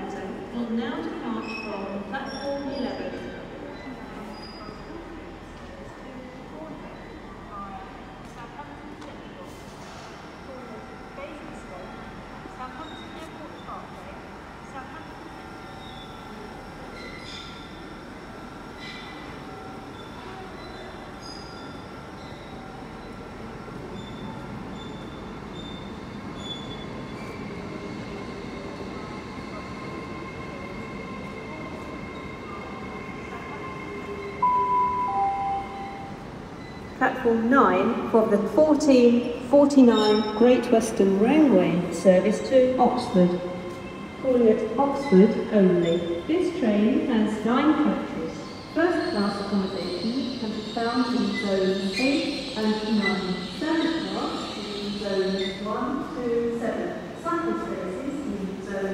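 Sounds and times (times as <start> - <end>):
train electric whine and rumble: 2.9 - 58.9
two-note station chime: 34.4 - 36.1.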